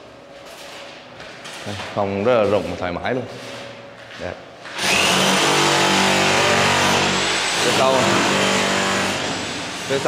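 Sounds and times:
power tool running: 4.7s - 10.0s.

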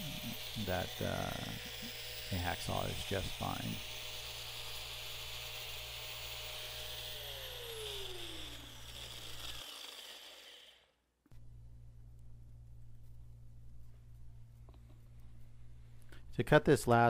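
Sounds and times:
angle grinder cutting metal: 0.0s - 10.9s
grinder motor winding down: 0.0s - 11.0s.

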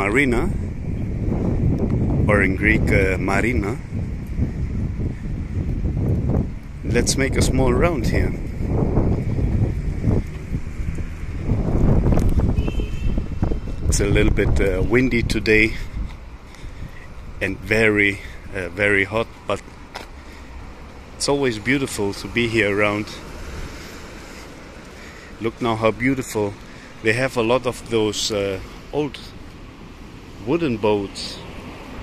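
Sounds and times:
wind buffeting microphone: 0.0s - 26.7s
outdoor background noise: 0.0s - 32.0s.

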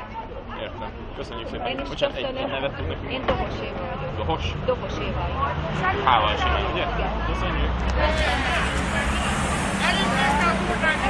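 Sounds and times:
people talking: 0.0s - 11.0s
road traffic rumble: 0.0s - 11.0s.

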